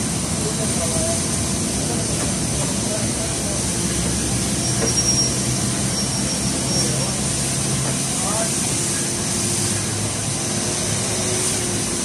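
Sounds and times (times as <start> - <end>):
vacuum cleaner running: 0.0 - 12.0.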